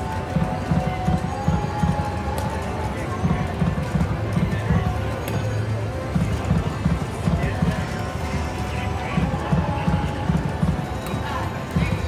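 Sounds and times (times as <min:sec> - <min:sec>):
slot machine music with drum beat: 0:00.0 - 0:12.0.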